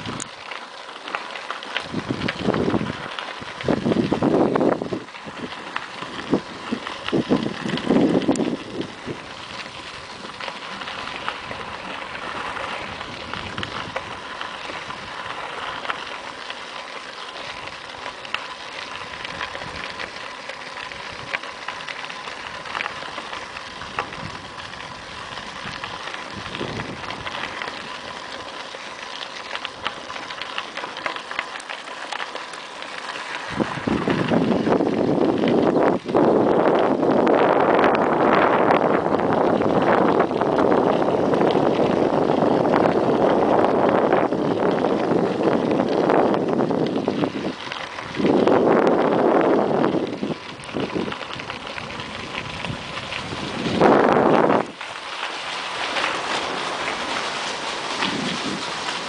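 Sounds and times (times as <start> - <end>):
bicycle tyres crunching gravel: 0.0 - 59.0
wind buffeting microphone: 1.8 - 15.6, 19.0 - 20.2, 22.4 - 28.2, 33.5 - 54.8, 56.0 - 59.0.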